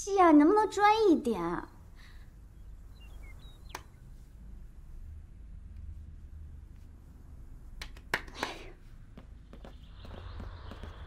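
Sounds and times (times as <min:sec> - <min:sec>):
low room hum: 0:00.0 - 0:11.0
faint high chirps: 0:02.5 - 0:04.0.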